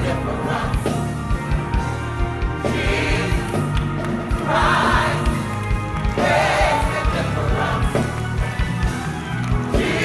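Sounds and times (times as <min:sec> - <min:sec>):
choir singing: 0:00.0 - 0:01.7, 0:02.4 - 0:10.0
keyboard and band accompaniment: 0:00.0 - 0:10.0.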